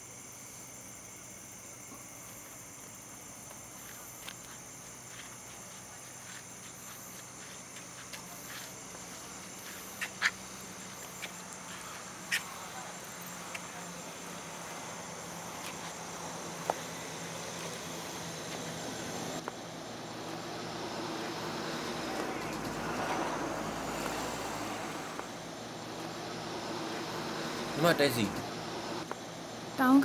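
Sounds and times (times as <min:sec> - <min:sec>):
night insects chirping: 0:00.0 - 0:30.0
vehicle rumble: 0:03.7 - 0:29.9.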